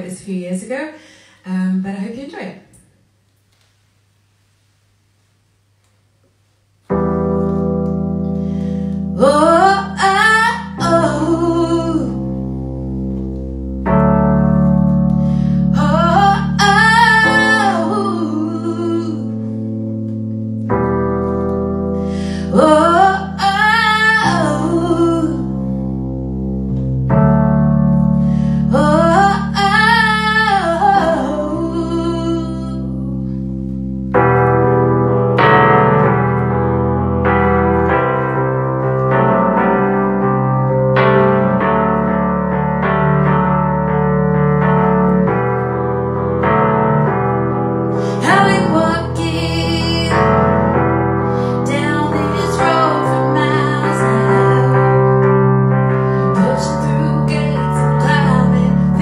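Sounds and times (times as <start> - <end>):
electronic keyboard chords: 6.8 - 59.0
woman singing: 9.2 - 12.2, 15.7 - 19.4, 22.4 - 25.6, 28.7 - 33.1, 48.0 - 50.5, 51.4 - 55.2, 56.3 - 59.0.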